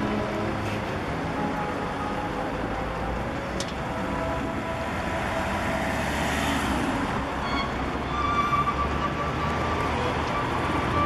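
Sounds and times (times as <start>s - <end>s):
road traffic: 0.0s - 11.0s
car passing close: 4.0s - 11.0s.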